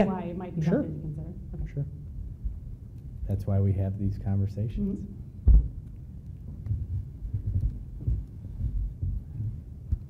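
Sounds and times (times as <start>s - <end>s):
low thumping rumble: 5.4s - 10.0s.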